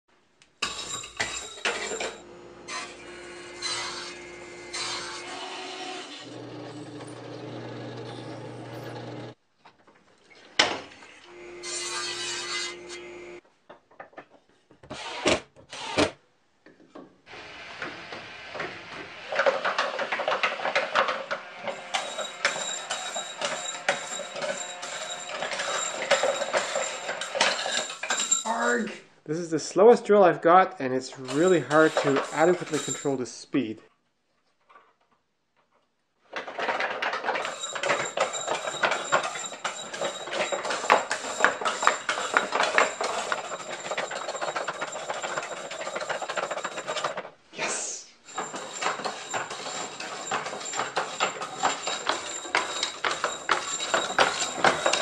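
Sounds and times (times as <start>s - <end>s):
drill press boring wood: 2.0s - 9.4s, 14.9s - 16.1s
handheld drill: 3.0s - 9.4s, 14.9s - 16.2s, 18.5s - 28.0s, 31.3s - 33.0s, 37.0s - 47.2s, 48.3s - 55.0s
wooden mechanism clicking and clattering: 19.2s - 28.6s, 36.3s - 47.4s, 48.3s - 55.0s.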